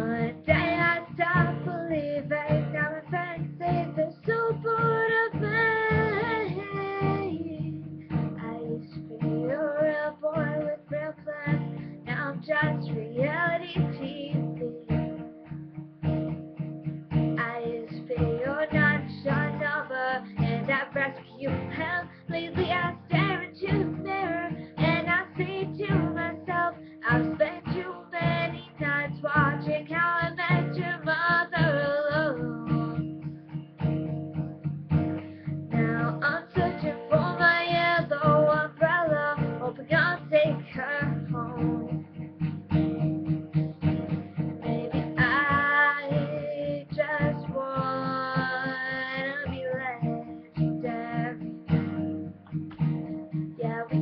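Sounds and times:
girl singing pop-rock song: 0.0 - 15.3, 17.1 - 33.3, 35.2 - 42.2, 43.9 - 52.0, 53.3 - 54.0
acoustic guitar strumming: 0.0 - 54.0.

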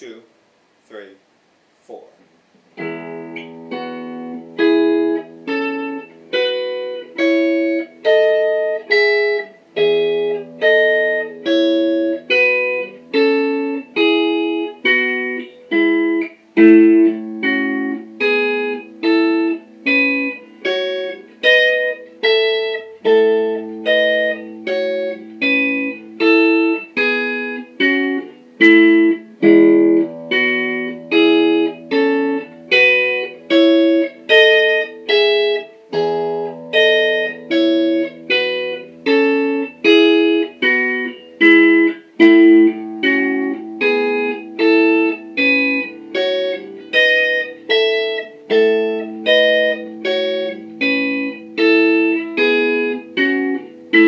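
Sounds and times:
electric guitar single notes: 2.8 - 54.0
held low guitar notes: 2.8 - 54.0.

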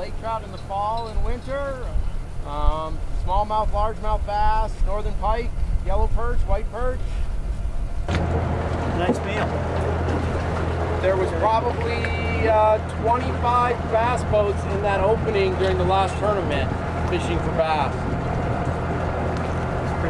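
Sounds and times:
people talking: 0.0 - 7.2, 8.9 - 9.6, 11.0 - 18.1
outboard motor humming: 7.0 - 20.0.

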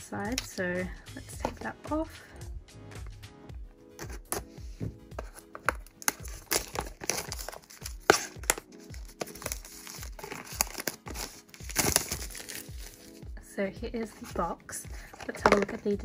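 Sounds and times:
background music with steady beat: 0.0 - 16.0
plastic shrink-wrap crackling: 5.7 - 13.2.

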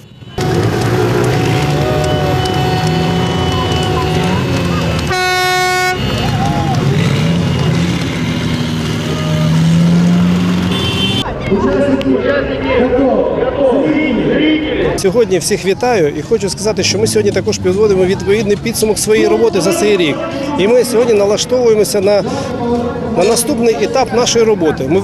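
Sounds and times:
horn: 0.0 - 6.3
motorcycles riding past: 0.4 - 11.3
crowd voices: 0.4 - 25.0.

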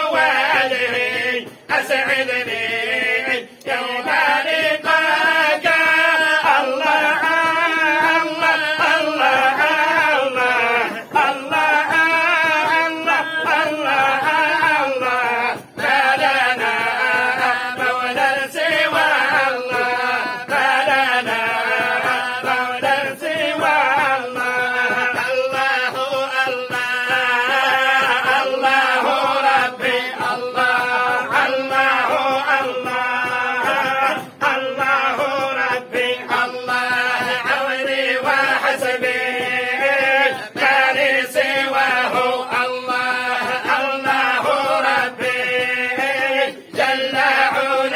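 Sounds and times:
men chanting in unison: 0.0 - 47.9.

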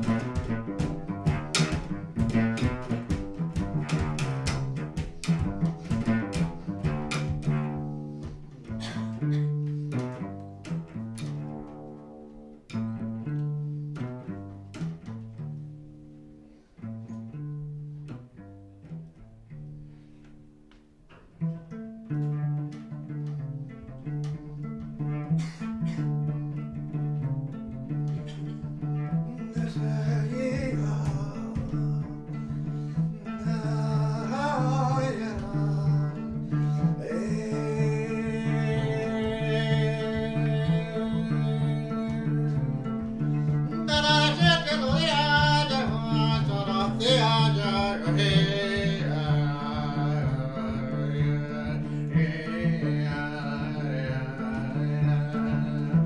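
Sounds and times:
cello plucked low notes: 0.0 - 56.0
wavering cello melody: 0.0 - 56.0.

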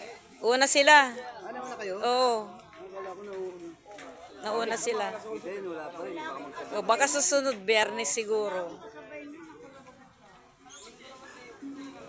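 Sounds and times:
faint street chatter: 0.0 - 12.0.

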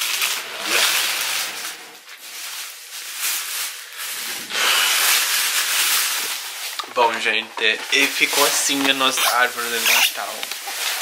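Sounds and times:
crinkling and rustling: 0.0 - 11.0.

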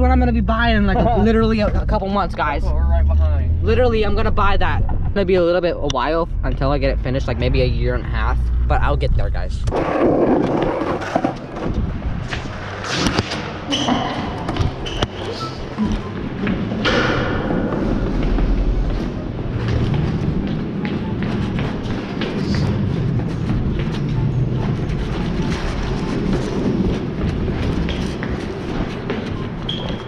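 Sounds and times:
footsteps on stairs: 17.6 - 30.0.

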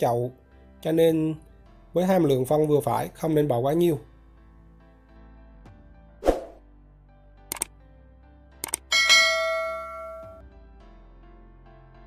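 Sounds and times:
mouse-click sound effects: 7.5 - 7.7, 8.6 - 8.9
bright bell ding: 8.9 - 10.4.

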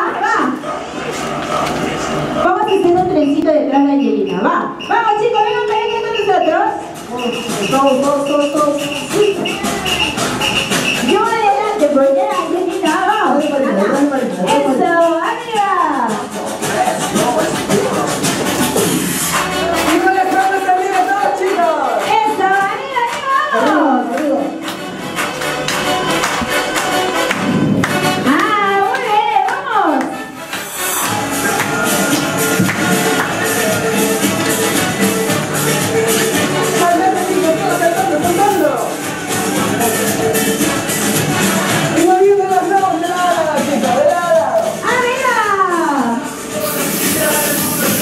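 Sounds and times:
group of people talking: 0.0 - 48.0
music playing: 0.0 - 48.0.

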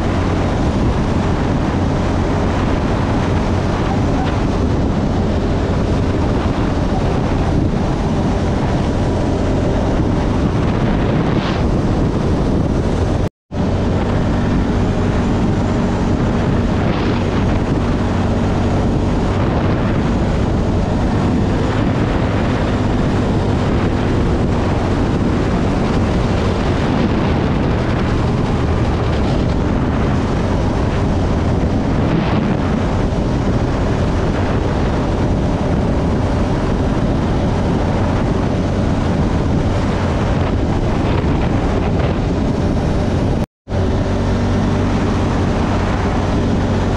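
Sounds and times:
quad bike engine running: 0.0 - 46.9
wind noise on microphone: 0.0 - 46.9.

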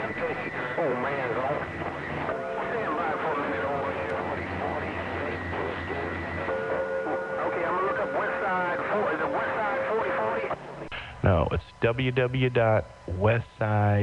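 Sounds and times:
whistling radio carrier tones: 0.0 - 10.6
garbled overlapping radio voices: 0.0 - 14.0.

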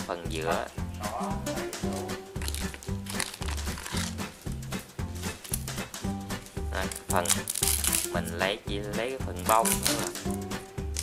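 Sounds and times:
background music with steady beat: 0.0 - 11.0
dry pod crackling and crinkling: 1.7 - 11.0.

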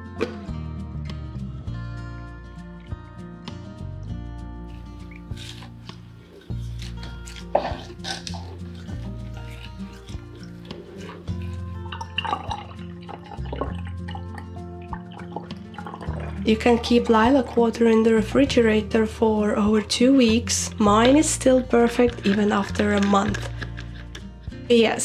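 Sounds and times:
music of sustained low notes: 0.0 - 25.0
water dripping through a sieve: 7.5 - 18.6.

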